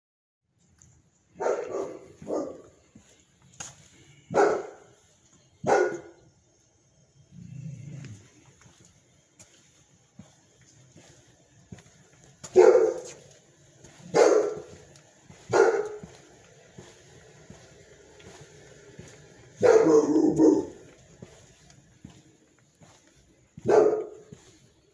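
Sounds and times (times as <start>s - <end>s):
dog barking: 1.3s - 2.8s, 4.3s - 4.9s, 5.6s - 6.2s, 12.5s - 13.2s, 14.0s - 14.8s, 15.5s - 16.1s, 19.6s - 20.8s, 23.6s - 24.3s.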